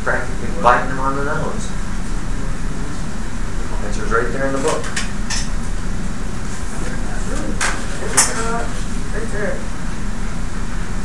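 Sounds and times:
steady hum: 0.0s - 11.0s
murmured voices: 6.6s - 9.7s.

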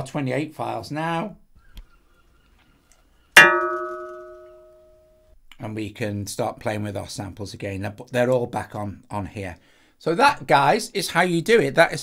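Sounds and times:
struck bell-like note: 3.4s - 4.9s.

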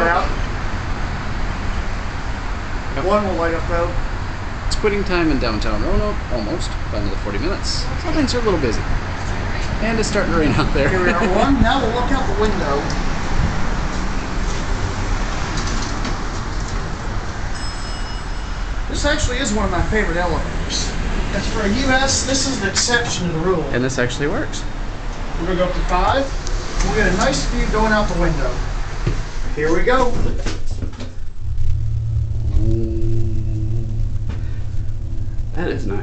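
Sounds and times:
low rumble of traffic: 0.0s - 36.0s
thin high whine: 17.3s - 20.8s, 31.2s - 36.0s
hydraulic elevator rumbling: 30.3s - 36.0s.

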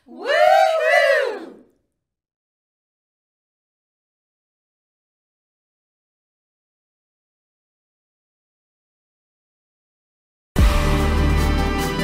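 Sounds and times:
women shouting woo together: 0.0s - 1.7s.

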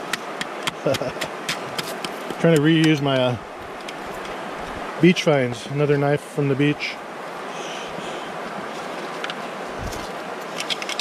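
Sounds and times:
creek water flowing over rocks: 0.0s - 11.0s.

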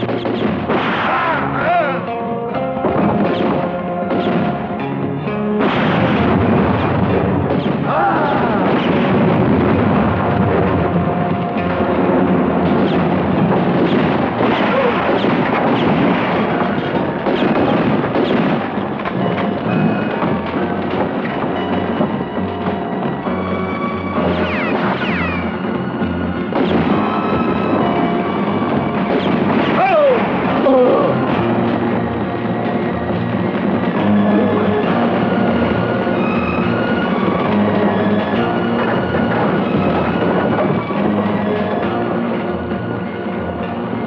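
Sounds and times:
booms: 0.0s - 2.0s, 2.8s - 4.9s, 5.5s - 41.3s
gunshots: 0.0s - 2.1s, 2.8s - 22.9s, 24.1s - 36.7s
film score music: 0.0s - 44.0s.

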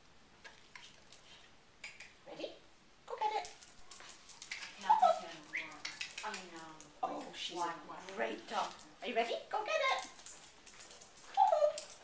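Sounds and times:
dog whimpering: 11.3s - 12.0s
dog yelp: 11.3s - 12.0s.

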